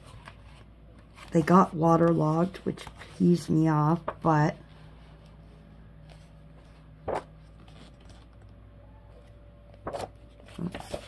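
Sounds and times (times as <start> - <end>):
faint room hum: 0.0 - 11.0
paper pages rustling: 0.0 - 11.0.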